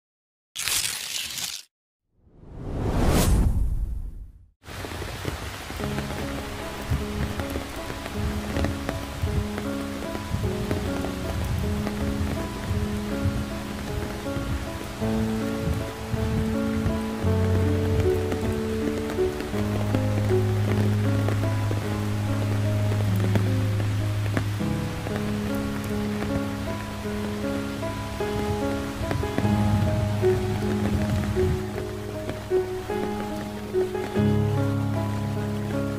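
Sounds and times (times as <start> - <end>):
falling rain hiss: 4.6 - 35.9
slow background music: 5.3 - 35.9.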